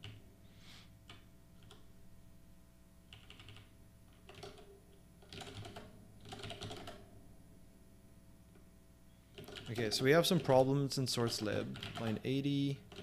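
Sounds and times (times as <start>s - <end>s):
computer keyboard typing: 1.1s - 1.8s, 3.1s - 7.1s, 9.3s - 13.0s.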